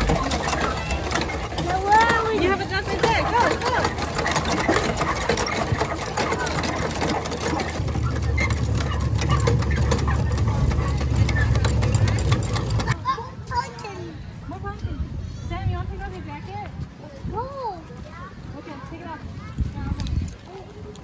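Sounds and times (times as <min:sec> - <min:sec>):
hand pump handles clanking: 0:00.0 - 0:13.0
water running into troughs: 0:00.0 - 0:13.0
voices: 0:00.0 - 0:21.0
low engine-like rumble: 0:05.8 - 0:13.0.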